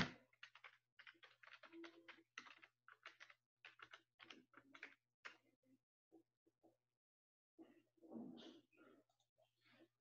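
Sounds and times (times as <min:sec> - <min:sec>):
keyboard typing: 0:00.0 - 0:05.5.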